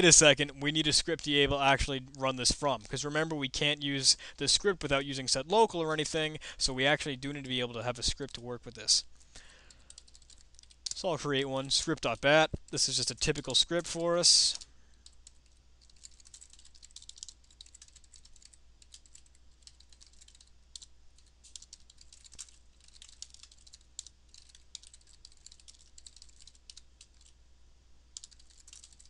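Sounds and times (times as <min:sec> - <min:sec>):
keyboard typing: 0:09.7 - 0:11.0, 0:14.5 - 0:27.4, 0:28.1 - 0:29.0.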